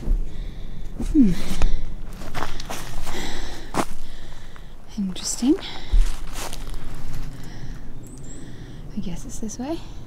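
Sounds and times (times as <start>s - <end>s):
footsteps on leafy dirt: 0.9s - 7.8s.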